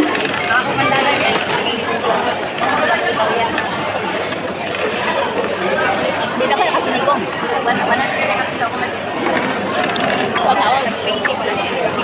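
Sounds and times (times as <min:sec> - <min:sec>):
crowd babble: 0:00.0 - 0:12.0
people talking over one another: 0:00.0 - 0:12.0.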